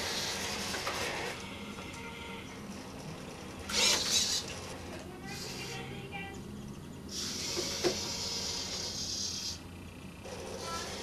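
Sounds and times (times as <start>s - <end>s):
robot arm motors running: 0.0s - 11.0s.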